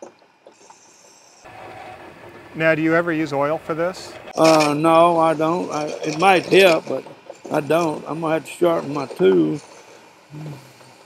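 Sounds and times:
steady mechanical hum: 0:00.0 - 0:11.0
thin high hiss: 0:00.6 - 0:01.6
graver scraping metal on lathe: 0:04.0 - 0:10.2.

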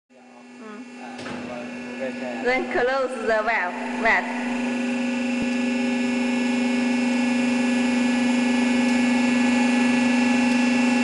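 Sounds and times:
electric motor hum: 0:00.1 - 0:11.0.

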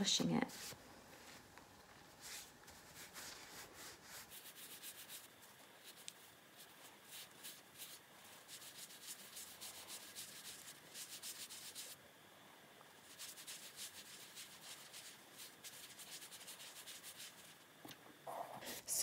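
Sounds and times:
nylon rubbing on hard mud ball: 0:02.2 - 0:12.0, 0:13.0 - 0:17.6.

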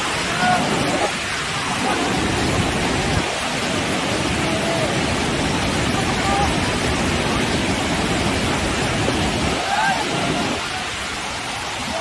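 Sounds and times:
whitewater rushing around rocks: 0:00.0 - 0:12.0.

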